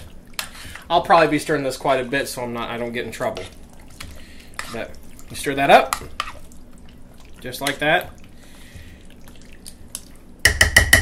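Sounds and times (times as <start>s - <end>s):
stirring thick sauce: 0.0s - 10.3s
spoon tapping pot rim: 10.4s - 11.0s.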